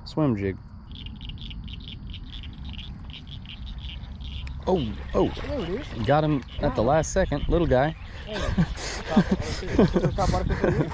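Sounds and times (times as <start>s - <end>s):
frog chorus: 0.5s - 10.9s.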